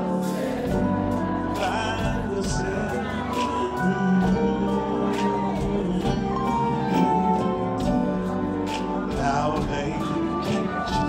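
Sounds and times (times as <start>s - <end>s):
live band playing: 0.0s - 11.0s
man singing: 1.3s - 11.0s.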